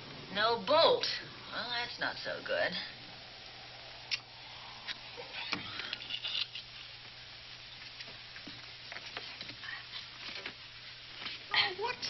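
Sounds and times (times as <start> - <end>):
film soundtrack hiss and crackle: 0.0 - 12.0
low hum: 1.1 - 8.0
light clicks and rustles: 7.8 - 10.6.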